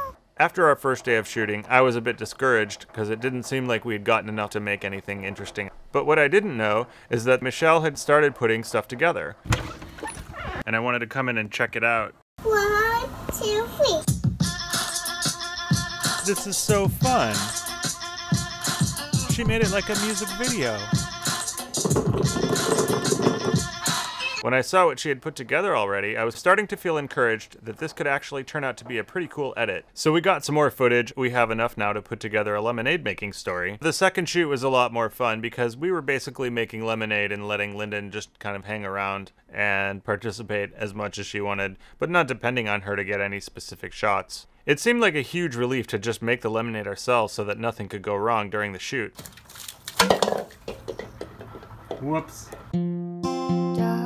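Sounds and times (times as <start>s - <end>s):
music with a steady beat: 14.1s - 24.2s
knocks and clatter: 21.7s - 23.8s, 50.0s - 52.7s
bucket hitting ground: 21.8s - 23.7s, 49.2s - 52.7s
water splashing onto concrete: 49.2s - 51.0s.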